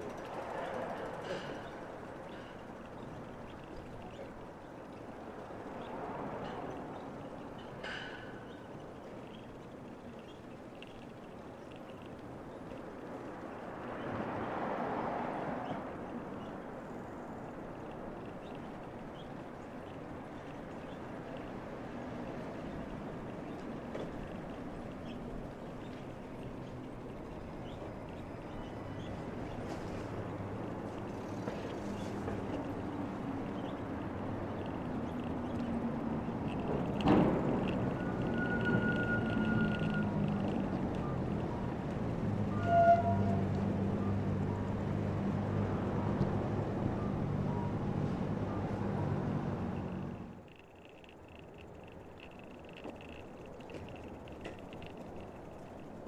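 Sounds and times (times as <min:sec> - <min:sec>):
low hum of road traffic: 0:00.0 - 0:56.0
small ticks: 0:05.8 - 0:14.1, 0:16.4 - 0:21.6, 0:22.6 - 0:41.1, 0:49.8 - 0:56.0.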